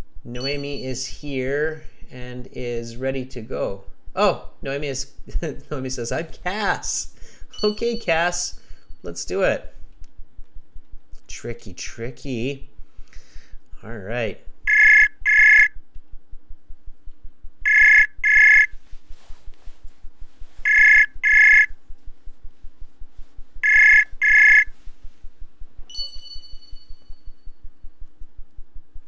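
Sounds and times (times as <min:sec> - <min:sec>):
short chime: 0:00.4 - 0:01.0, 0:07.5 - 0:08.3, 0:25.9 - 0:27.6
call ringback tone: 0:00.4 - 0:01.1, 0:07.5 - 0:08.4, 0:14.7 - 0:15.7, 0:17.7 - 0:18.7, 0:20.6 - 0:21.8, 0:23.6 - 0:24.7, 0:25.9 - 0:27.6.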